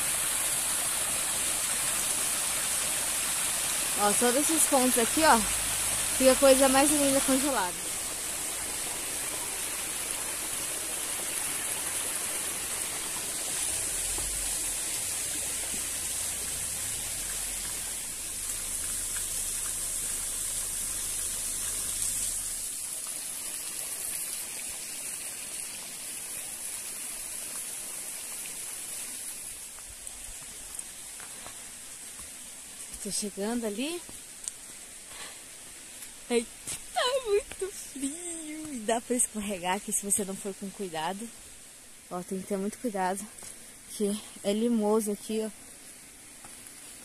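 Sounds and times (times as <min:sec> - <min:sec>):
waterfall rushing over rocks: 0:00.0 - 0:47.0.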